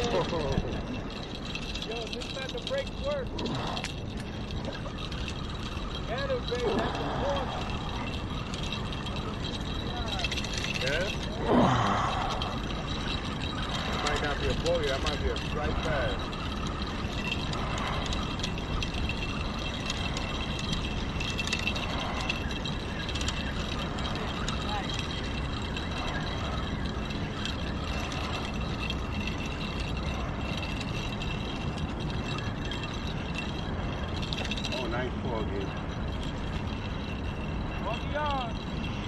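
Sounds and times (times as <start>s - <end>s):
fishing reel cranking: 0.0s - 39.0s
outdoor background noise: 0.0s - 39.0s.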